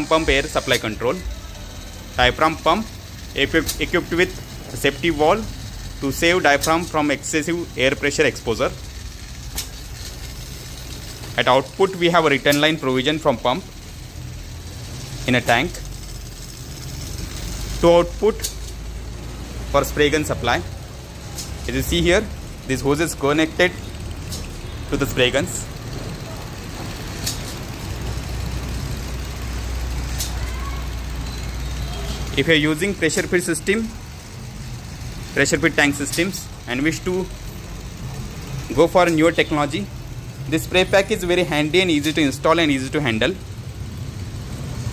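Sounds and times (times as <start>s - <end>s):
air hissing: 0.0s - 43.1s
low machine hum: 0.0s - 44.9s.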